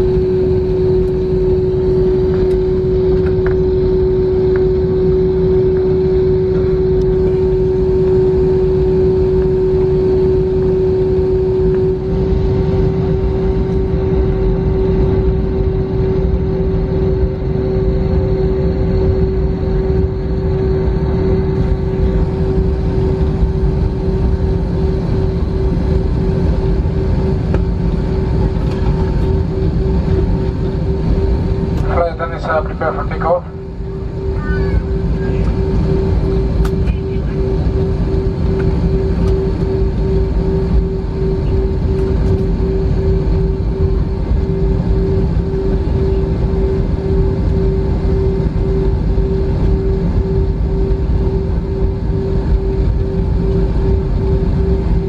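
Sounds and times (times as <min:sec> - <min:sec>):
aircraft engines rumbling: 0:00.0 - 0:55.0
constant hum: 0:00.0 - 0:55.0.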